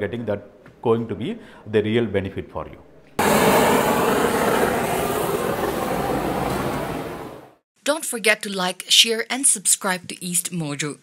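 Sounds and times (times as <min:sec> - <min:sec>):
burner flame rushing: 0:03.2 - 0:07.6.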